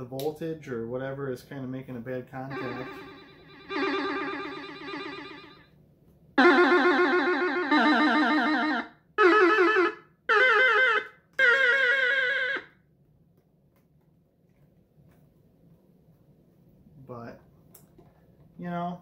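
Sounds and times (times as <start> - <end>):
buzzy toy electronic guitar notes: 2.5 - 5.6, 6.4 - 12.7.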